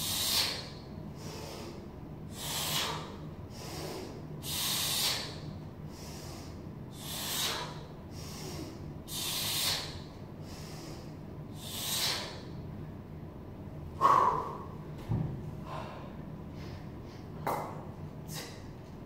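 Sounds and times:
man's hissing exhalations: 0.0s - 12.5s.

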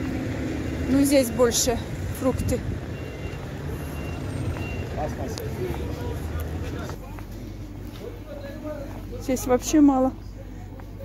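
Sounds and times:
vehicle engines rumbling: 0.0s - 11.0s
short high-pitched beep: 2.3s - 5.0s.

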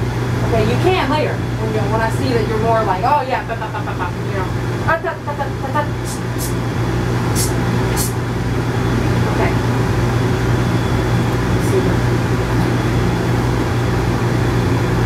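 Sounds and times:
low machine hum: 0.0s - 15.0s
grooming shears snipping hair: 6.1s - 6.6s.

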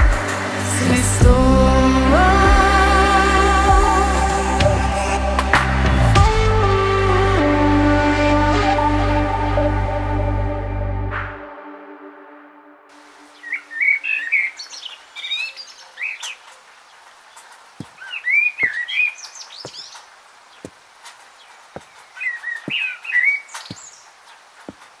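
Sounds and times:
songbird chirping: 12.9s - 25.0s.

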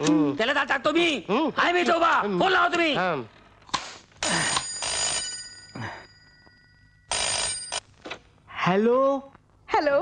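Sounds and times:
telephone bell ringing: 4.3s - 7.9s.

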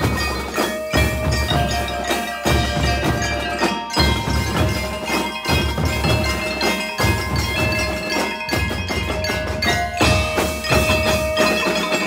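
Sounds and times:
bass and snare drum strokes: 0.0s - 12.0s
mallet keyboard melody: 0.0s - 12.0s.

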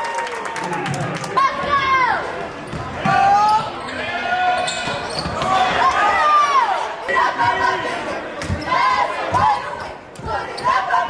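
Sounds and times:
people shouting: 5.4s - 11.0s.

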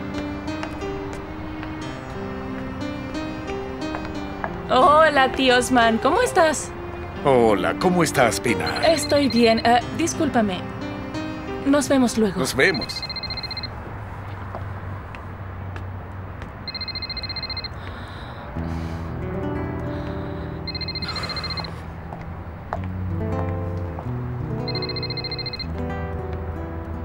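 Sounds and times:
soft background music: 0.0s - 27.0s
mobile phone ringing: 8.5s - 9.7s, 12.7s - 13.7s, 16.6s - 17.8s, 20.6s - 21.8s, 24.6s - 25.7s.

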